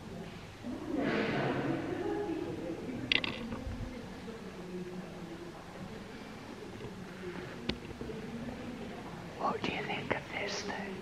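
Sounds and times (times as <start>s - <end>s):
person whispering: 9.4s - 11.0s.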